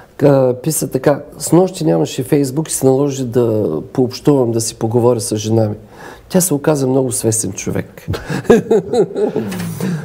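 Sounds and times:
man laughing loudly: 8.1 - 10.0.

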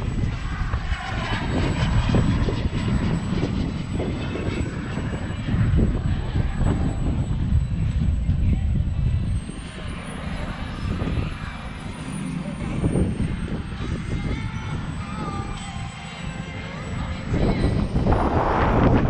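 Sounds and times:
model jet turbine running: 0.0 - 19.0
wind rumble on microphone: 0.0 - 19.0.

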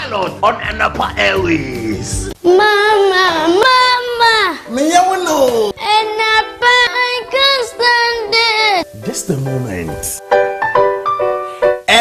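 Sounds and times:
child singing: 2.4 - 4.7, 5.8 - 8.8.

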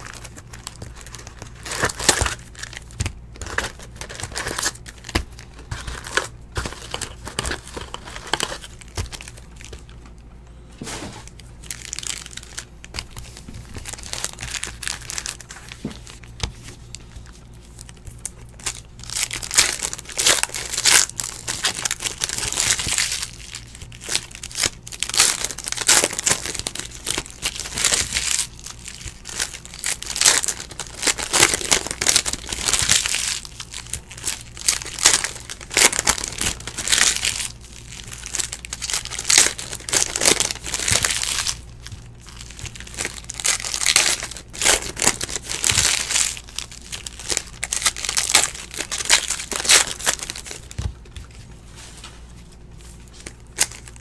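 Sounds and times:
foil wrappers crinkling and tearing: 0.0 - 10.2, 10.8 - 54.0.

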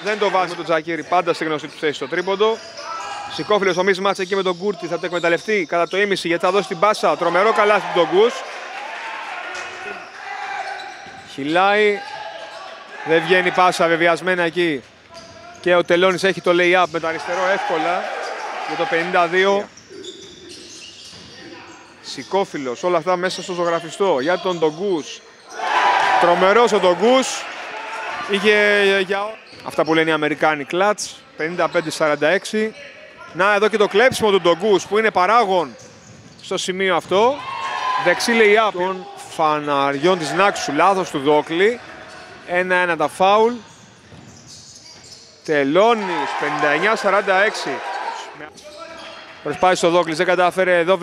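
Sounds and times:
basketball bouncing on wooden court: 35.9 - 36.4, 44.0 - 45.1.

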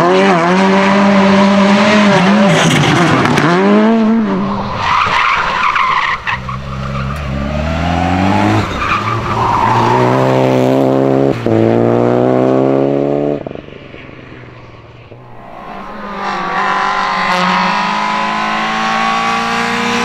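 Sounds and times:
rally car engines revving high: 0.0 - 13.6, 15.2 - 20.0.

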